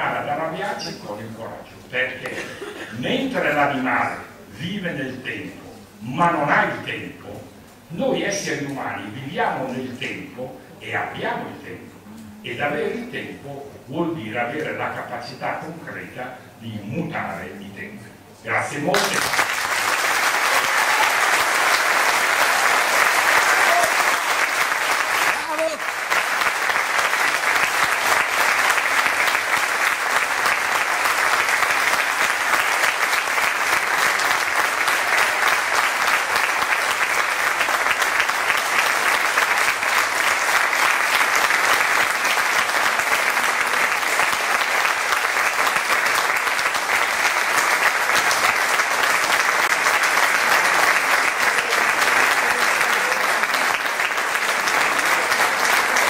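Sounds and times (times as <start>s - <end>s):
audience applauding: 18.9s - 56.0s.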